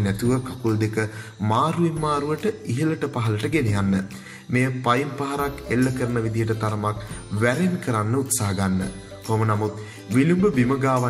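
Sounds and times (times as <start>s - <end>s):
background music: 0.0s - 11.0s
person speaking: 0.0s - 11.0s.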